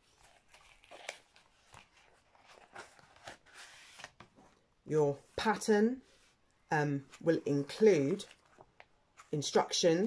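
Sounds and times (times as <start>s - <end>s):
paper rustling: 0.0s - 4.6s.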